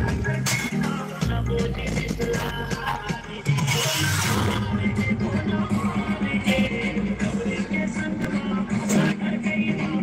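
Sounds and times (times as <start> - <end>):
dj music with pulsing bass: 0.0 - 10.0.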